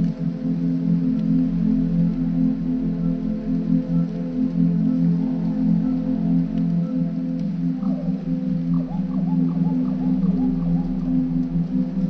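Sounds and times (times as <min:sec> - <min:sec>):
low drone of held tones: 0:00.0 - 0:12.0.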